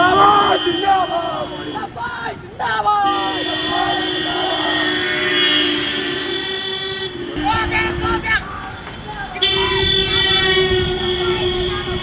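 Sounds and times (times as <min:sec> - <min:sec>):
people shouting: 0:00.0 - 0:06.4, 0:07.2 - 0:12.0
vehicle horns blaring: 0:00.0 - 0:12.0.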